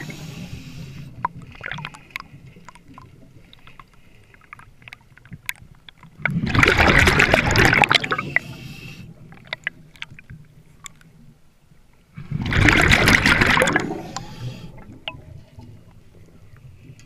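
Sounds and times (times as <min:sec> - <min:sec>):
rush of exhaled bubbles: 0:01.2 - 0:03.1, 0:06.2 - 0:08.6, 0:12.2 - 0:15.1.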